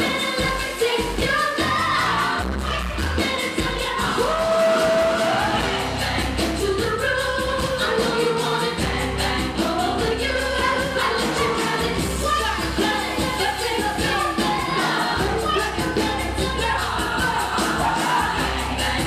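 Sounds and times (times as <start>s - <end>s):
live pop band: 0.0s - 19.0s
woman singing: 0.0s - 19.0s.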